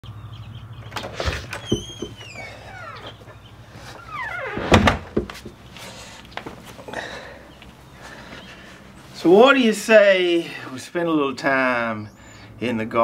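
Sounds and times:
door hinge creaking: 0.8 - 5.3
door thumping shut: 0.9 - 3.0, 4.2 - 5.4.

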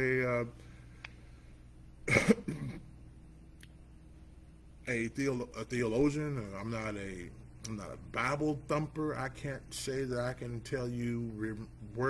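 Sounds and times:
man coughing: 2.0 - 2.9.

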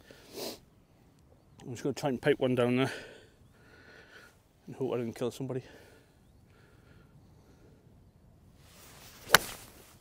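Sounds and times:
golf club swing swish: 8.7 - 10.0
club striking ball crack: 9.2 - 9.8.

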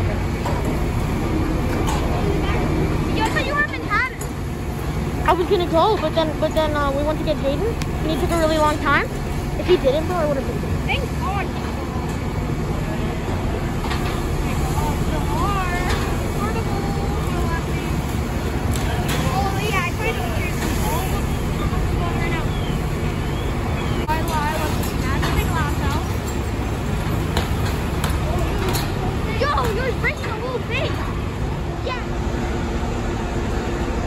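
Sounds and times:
diesel engine rumbling: 0.0 - 34.0
indistinct voices murmuring: 0.0 - 34.0.

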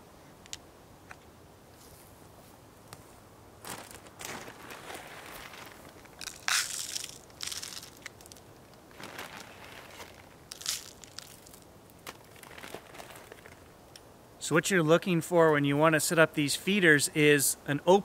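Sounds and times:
footsteps on dry forest litter: 3.6 - 13.6
crunching and rustling: 3.6 - 13.8.

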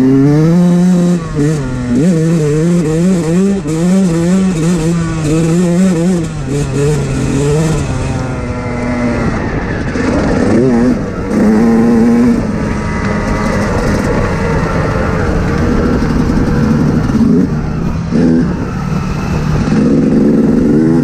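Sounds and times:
off-road vehicle engine revving: 0.0 - 21.0.

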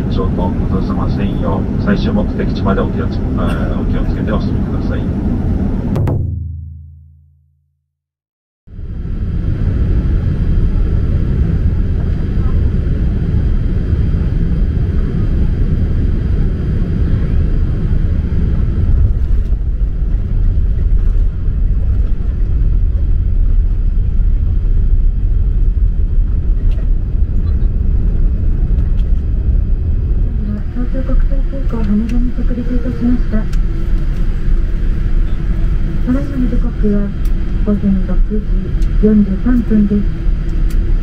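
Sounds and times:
airliner engine noise: 0.0 - 6.0, 8.7 - 41.0.

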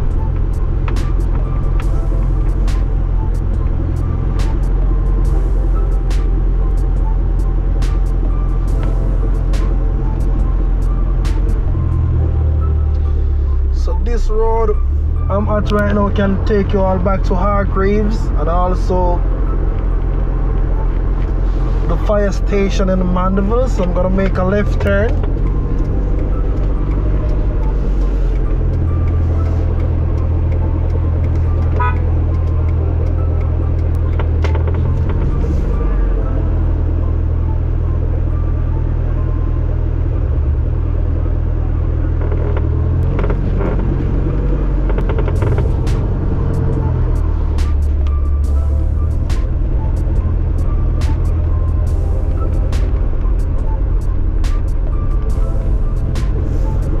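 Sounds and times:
car interior rumble: 0.0 - 57.0
music playing: 0.0 - 57.0.

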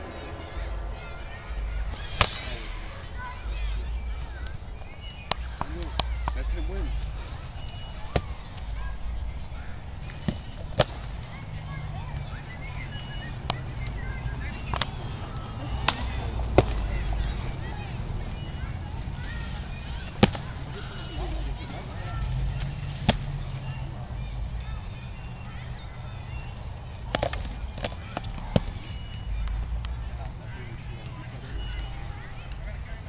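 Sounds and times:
steady low rumble: 0.0 - 10.3.

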